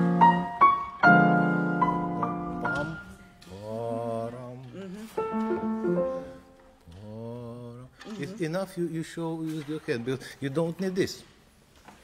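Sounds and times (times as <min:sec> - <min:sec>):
man singing wordless phrase: 0:02.2 - 0:05.0, 0:06.9 - 0:09.1.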